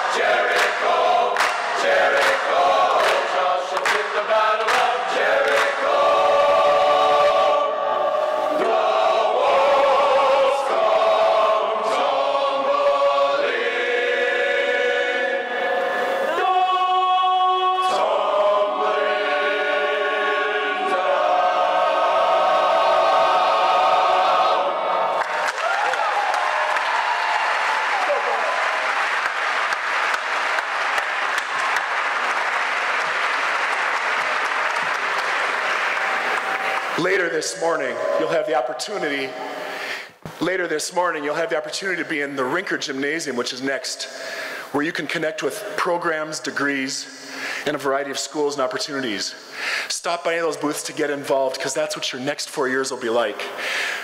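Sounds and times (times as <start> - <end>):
audience applause: 0.0 - 6.2, 25.1 - 37.2
men's chorus singing: 0.0 - 25.2.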